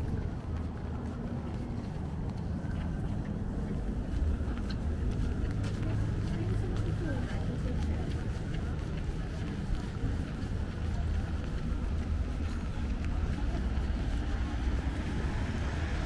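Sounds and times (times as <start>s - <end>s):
passers-by talking faintly: 0.0s - 16.0s
traffic rumble on wet road: 0.0s - 16.0s.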